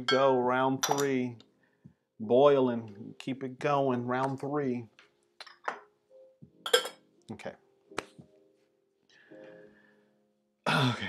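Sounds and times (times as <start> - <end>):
ceramic tea cups clinking: 0.0 - 1.2, 5.4 - 5.9, 6.7 - 7.0.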